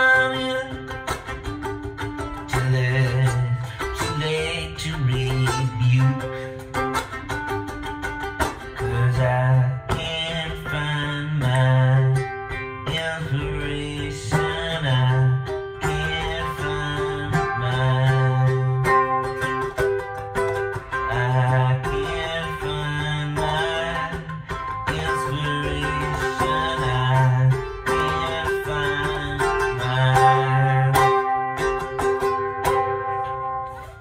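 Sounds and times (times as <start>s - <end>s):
ukulele strumming: 0.0s - 34.0s.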